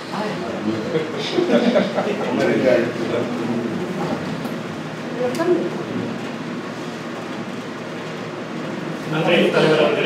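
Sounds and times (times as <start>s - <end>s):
air conditioner whirring hum: 0.0s - 10.0s.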